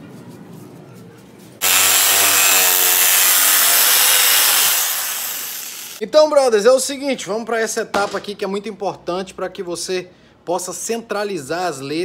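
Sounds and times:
electric jigsaw cutting plywood: 0:01.6 - 0:06.0.

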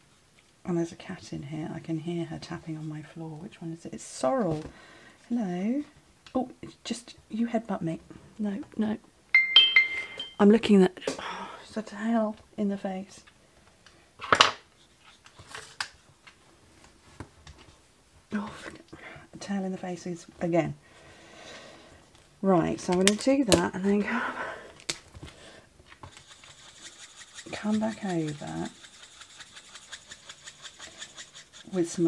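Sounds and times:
marker rubbing on paper: 0:26.0 - 0:32.0.

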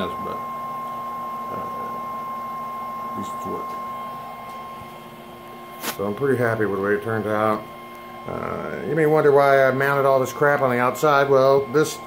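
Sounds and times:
charge controller whirring: 0:00.0 - 0:12.0
high whine: 0:00.0 - 0:12.0.

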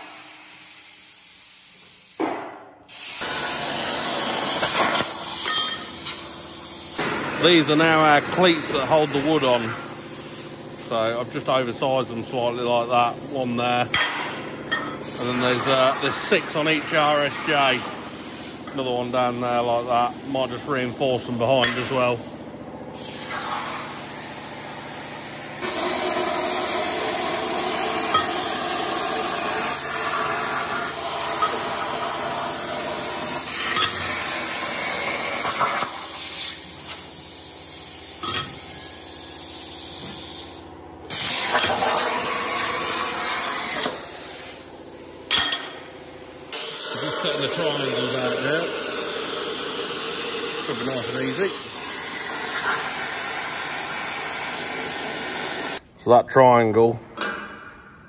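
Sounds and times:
plasma cutter hissing: 0:00.0 - 0:14.4, 0:15.0 - 0:22.3, 0:23.0 - 0:44.7, 0:46.5 - 0:55.8.

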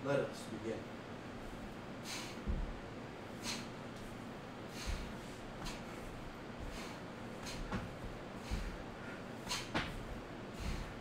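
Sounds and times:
steady background hiss: 0:00.0 - 0:11.0
man's sharp breaths exhaled: 0:02.0 - 0:02.5, 0:03.4 - 0:03.8, 0:04.7 - 0:05.9, 0:06.6 - 0:11.0
soft low thump: 0:02.4 - 0:02.8.

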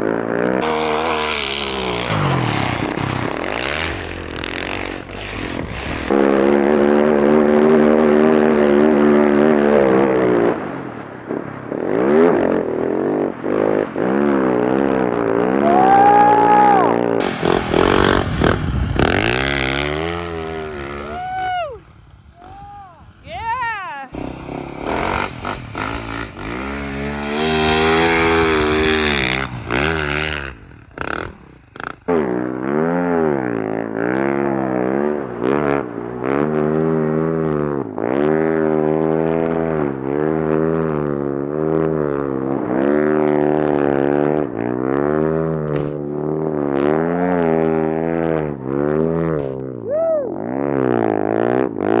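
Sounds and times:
snow bike engine revving: 0:00.0 - 0:52.0.

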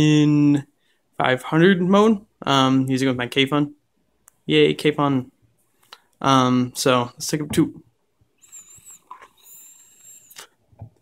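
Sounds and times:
e-cigarette puff whistle: 0:08.4 - 0:10.6.

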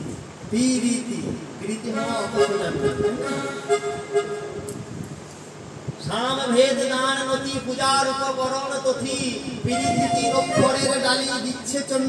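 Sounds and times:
harmonium holding a note: 0:02.0 - 0:04.8, 0:09.7 - 0:11.0.

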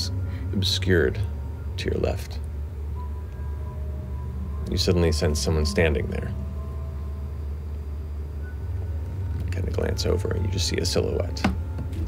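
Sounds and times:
low drone: 0:00.0 - 0:12.0.

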